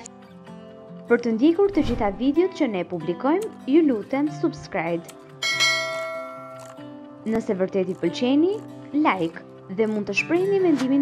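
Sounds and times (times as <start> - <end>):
bell-like chime: 5.4 - 6.8.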